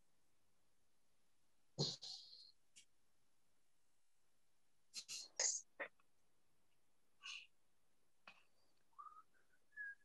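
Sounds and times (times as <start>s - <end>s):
short whistle-like tones: 8.9s - 10.0s.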